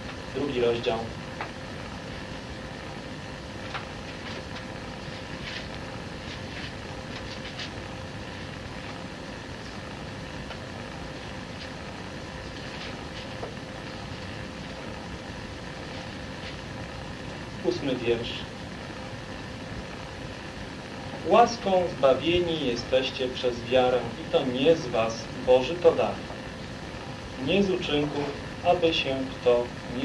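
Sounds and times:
recording hiss and hum: 0:00.0 - 0:30.0.

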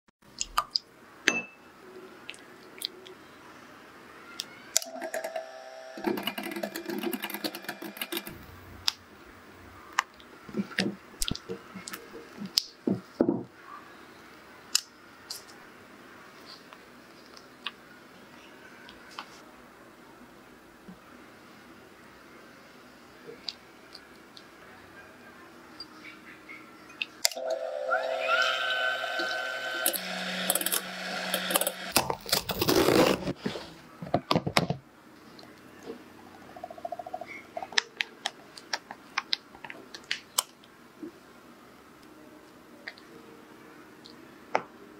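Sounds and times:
electric hand mixer running: 0:27.4 - 0:32.0.

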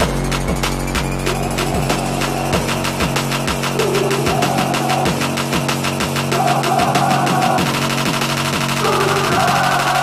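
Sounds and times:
fast music with driving beat: 0:00.0 - 0:10.0.

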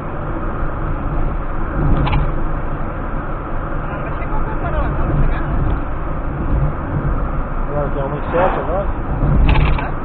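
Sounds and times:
road and engine rumble: 0:00.0 - 0:10.0
brief rattle: 0:09.2 - 0:10.0.

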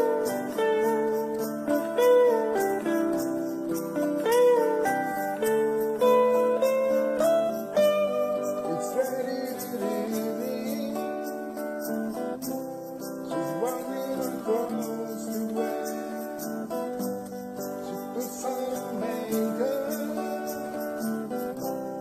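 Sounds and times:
electric guitars playing ballad: 0:00.0 - 0:22.0.

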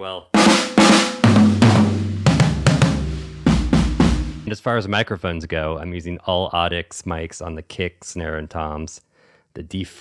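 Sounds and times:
bass drum hit: 0:00.4 - 0:04.5
drum kit playing a groove: 0:00.4 - 0:04.5.

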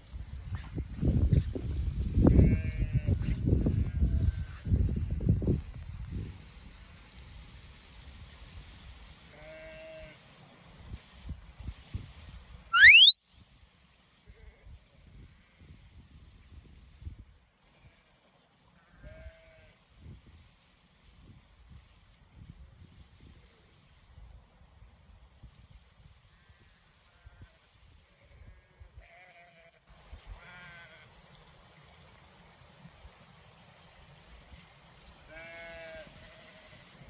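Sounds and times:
gusty wind on microphone: 0:00.0 - 0:06.8
wind rumble on microphone: 0:00.0 - 0:07.6, 0:10.8 - 0:12.7, 0:14.3 - 0:17.4, 0:21.1 - 0:29.1
loud rising whistle: 0:12.7 - 0:13.2.

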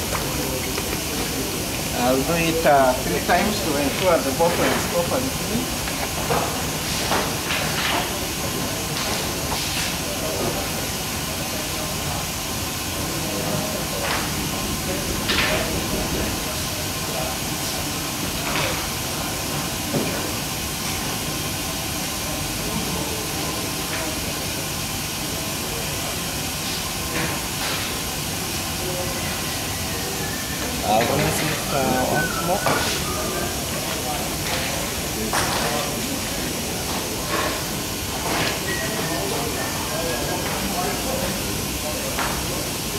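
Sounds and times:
equipment hissing: 0:00.0 - 0:07.4, 0:08.0 - 0:42.9.

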